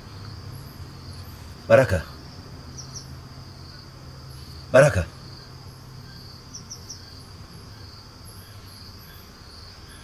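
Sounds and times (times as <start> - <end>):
low steady hum: 0.0 - 9.9
crickets trilling: 0.0 - 10.0.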